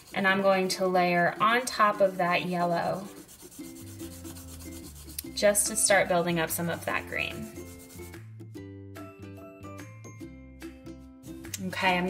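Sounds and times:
colored pencil scratching paper: 0.0 - 8.2.

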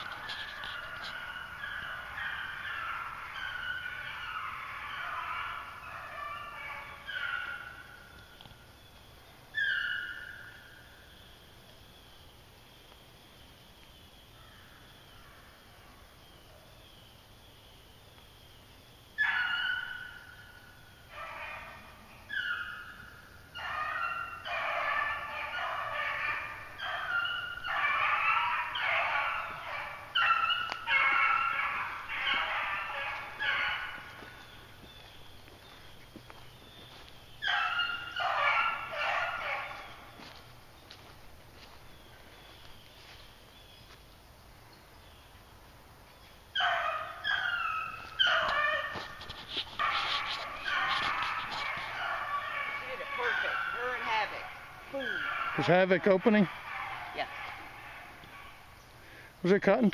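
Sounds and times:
beagles baying: 0.0 - 11.3, 19.1 - 44.0, 44.9 - 59.9.

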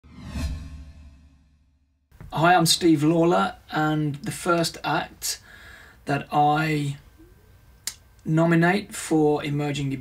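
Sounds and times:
whoosh sound effect: 0.0 - 1.6.

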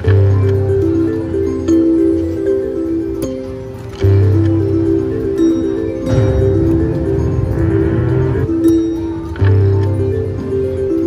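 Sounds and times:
electronic bell-like tune: 4.6 - 11.0
low hum: 6.2 - 8.7.

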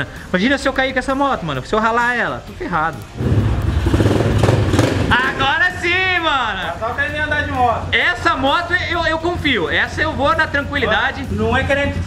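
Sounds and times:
small motorbike engine running: 3.2 - 5.2.

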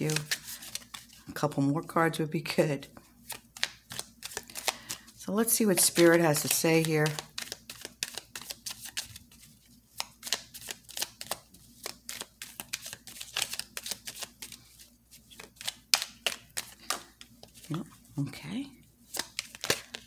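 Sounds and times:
cards being shuffled: 0.0 - 1.2, 3.2 - 18.0, 19.0 - 20.0.

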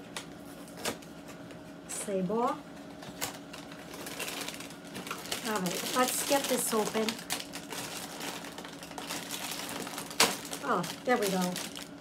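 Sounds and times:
plastic bag crinkling: 3.1 - 12.0.

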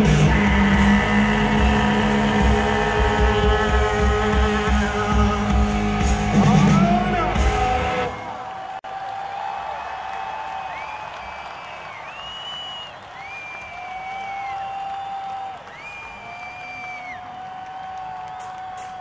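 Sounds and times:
audience cheering: 0.0 - 19.0
long steady whistles: 10.8 - 19.0.

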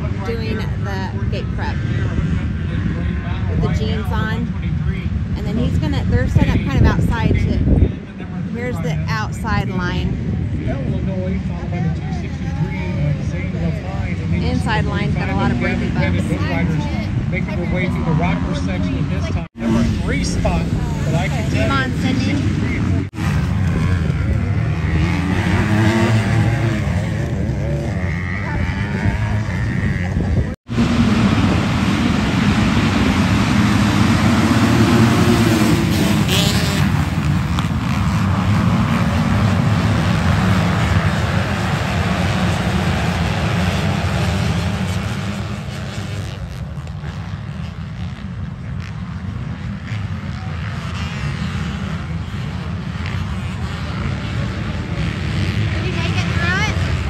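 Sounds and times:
dirt bike engines revving: 0.0 - 57.0.

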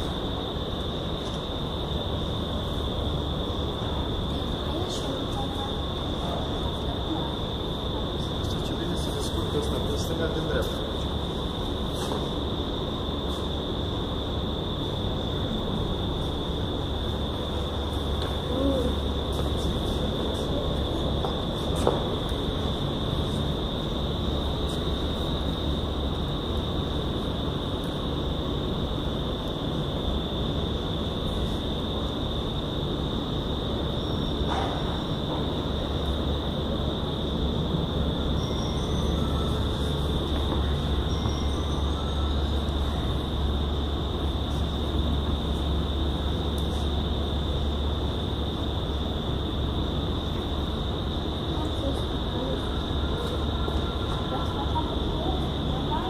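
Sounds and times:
high whine: 0.0 - 56.0.

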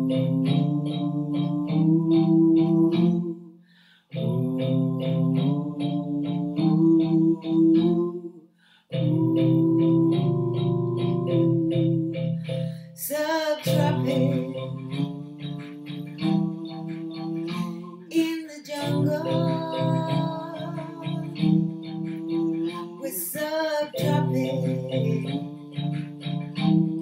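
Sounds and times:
electronic keyboard chords: 0.0 - 3.4, 4.1 - 8.3, 8.9 - 27.0
man and woman singing: 0.0 - 3.4, 4.2 - 8.4, 9.0 - 12.3, 13.0 - 27.0.

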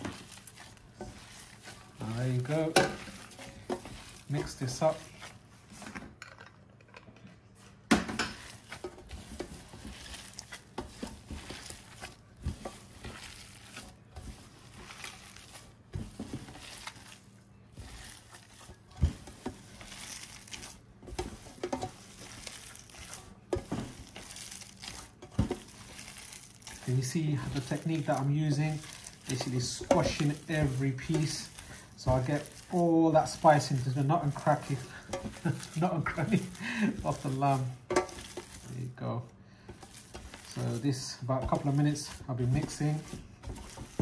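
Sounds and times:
wet squishing of meat: 0.0 - 5.7, 8.4 - 44.0.

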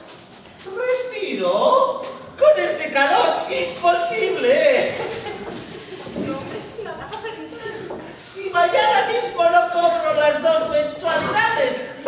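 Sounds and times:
actor speaking: 0.7 - 5.0, 8.2 - 12.0.

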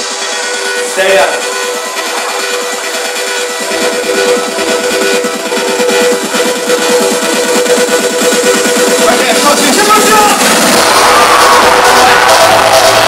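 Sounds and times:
electronic dance music over a pa: 0.0 - 13.0.

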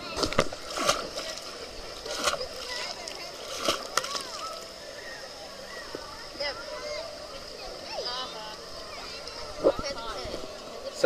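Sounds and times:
children's voices: 0.0 - 11.0
pool water splashing and dripping: 0.0 - 11.0.

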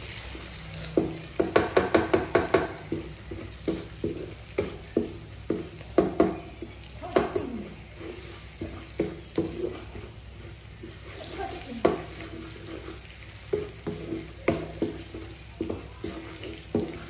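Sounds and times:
egg sizzling: 0.0 - 17.0
spatula scraping a metal wok: 0.0 - 17.0.

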